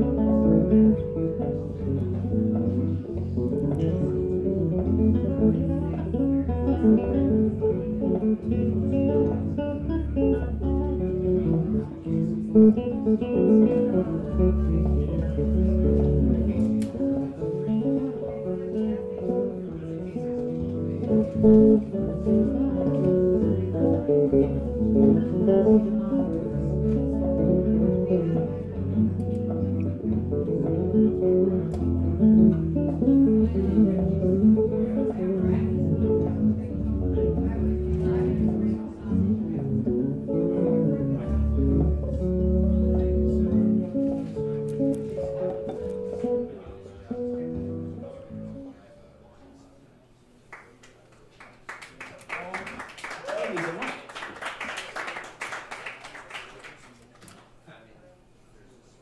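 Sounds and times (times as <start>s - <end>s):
electric bass guitar playing: 0.0s - 48.7s.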